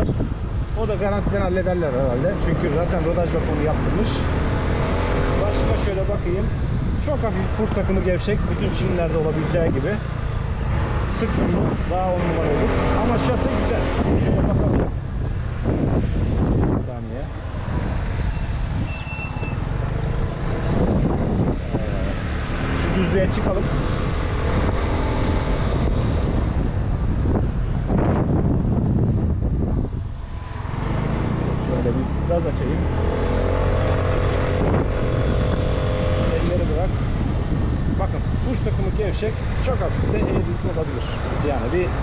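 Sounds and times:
wind noise on microphone: 0:00.0 - 0:42.0.

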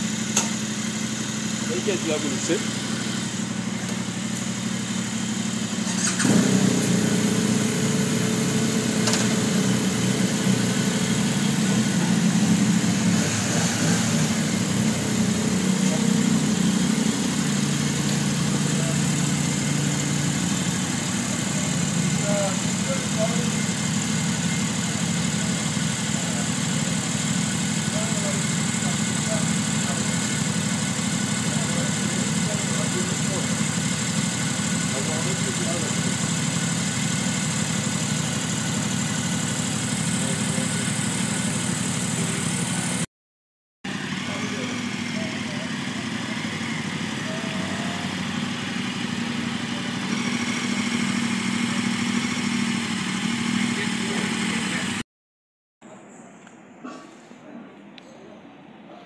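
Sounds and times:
motorcycle engine starting: 0:00.0 - 0:43.1, 0:43.9 - 0:55.0
motorcycle engines idling: 0:00.0 - 0:43.1, 0:43.9 - 0:55.0.

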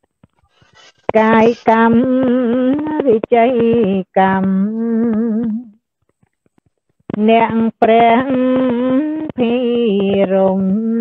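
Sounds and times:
woman chanting: 0:01.2 - 0:05.7, 0:07.2 - 0:11.0.

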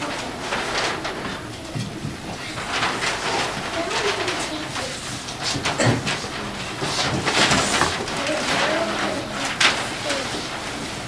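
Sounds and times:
cardboard props rustling and knocking: 0:00.0 - 0:11.0
children's voices: 0:00.0 - 0:11.0.

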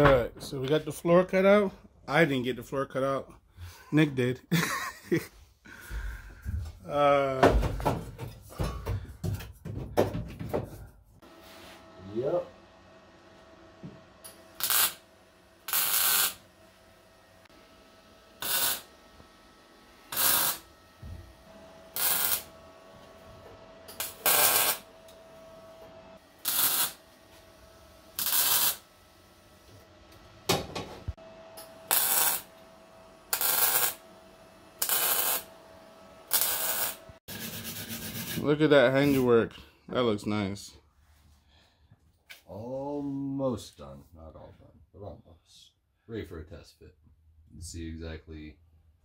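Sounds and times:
arc welding bursts: 0:14.2 - 0:16.5, 0:18.3 - 0:19.0, 0:20.1 - 0:20.8, 0:21.9 - 0:22.6, 0:23.9 - 0:25.0, 0:26.2 - 0:27.1, 0:28.1 - 0:28.9, 0:31.6 - 0:32.6, 0:33.2 - 0:34.1, 0:34.8 - 0:35.5, 0:36.2 - 0:38.6.

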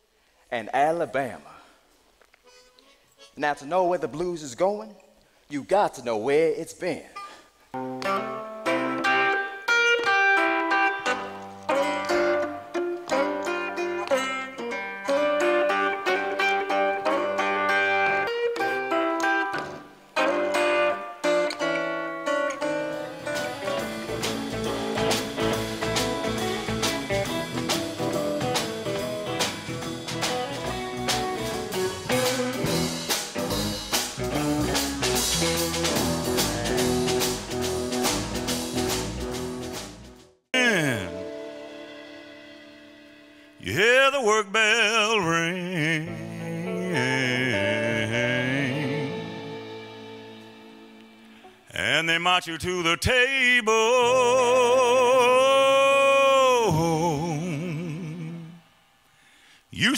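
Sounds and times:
blues guitar: 0:07.8 - 0:58.6
drums and band playing: 0:22.7 - 0:43.9, 0:48.0 - 0:51.4.

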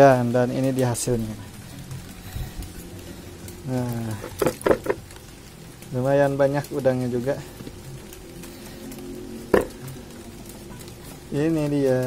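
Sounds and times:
water splashing in a bucket: 0:03.6 - 0:05.2.

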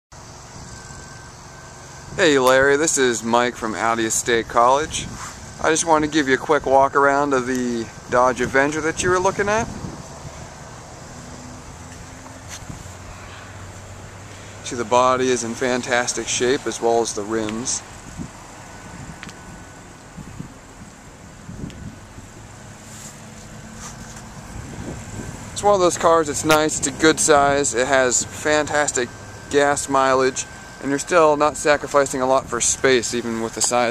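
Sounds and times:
wind rumble on microphone: 0:04.9 - 0:10.8, 0:12.5 - 0:14.2, 0:17.8 - 0:27.6.

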